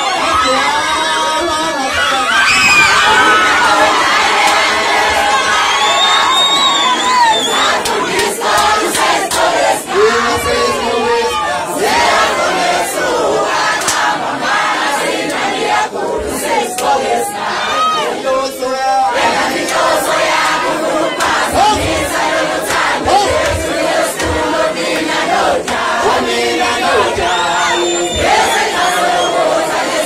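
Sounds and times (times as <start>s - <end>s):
shrill voices: 0.0s - 8.9s, 16.2s - 22.5s, 25.4s - 30.0s
crowd shouting and cheering: 0.0s - 30.0s.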